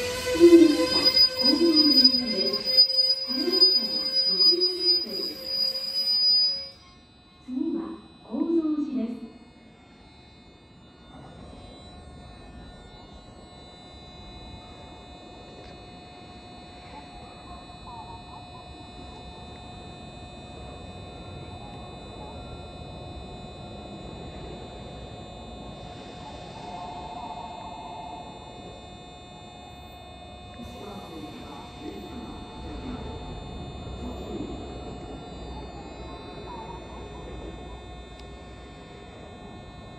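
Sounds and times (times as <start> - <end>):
warbling tone: 0.0 - 6.9
high whines: 0.0 - 17.0, 19.6 - 39.9
train electrical hum: 0.0 - 39.9.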